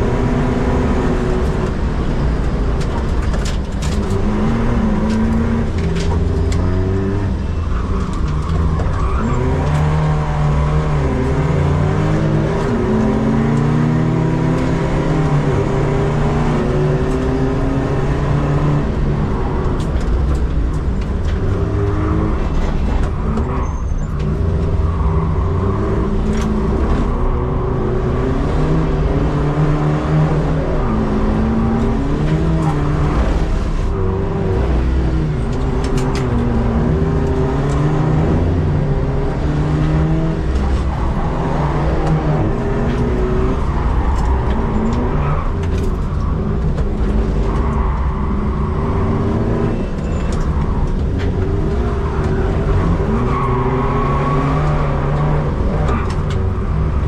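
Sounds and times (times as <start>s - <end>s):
race car engine from inside cabin: 0.0s - 57.0s.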